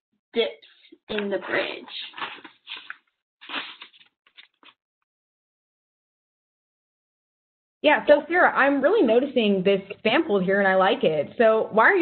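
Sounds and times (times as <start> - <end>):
paper rustling and crackling: 0.7 - 4.8.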